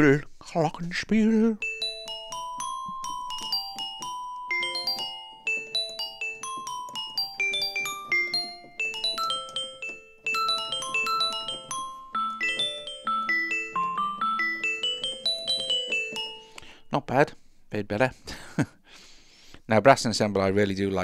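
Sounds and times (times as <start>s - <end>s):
glockenspiel notes in quick runs: 1.4s - 16.9s.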